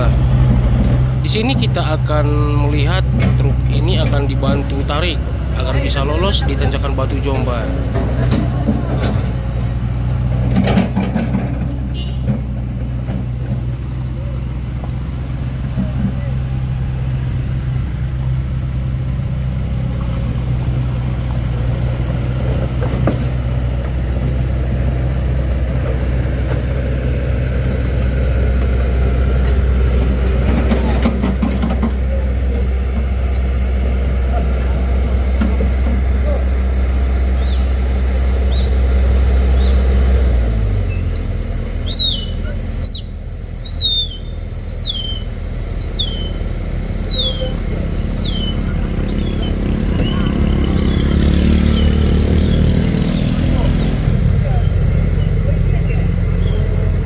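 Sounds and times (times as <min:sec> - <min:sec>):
vehicle engine idling: 0:00.0 - 0:57.0
bird chirping: 0:37.4 - 0:37.7, 0:38.5 - 0:38.7, 0:39.6 - 0:39.8, 0:41.8 - 0:52.7, 0:56.4 - 0:56.7.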